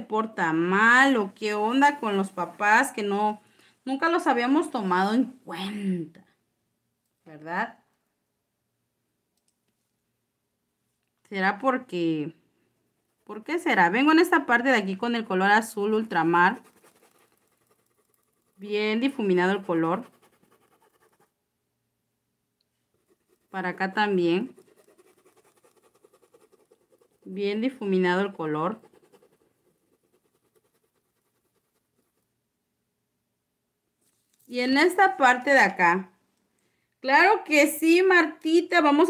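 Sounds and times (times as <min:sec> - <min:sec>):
brush strokes on fabric: 0:16.2 - 0:18.6.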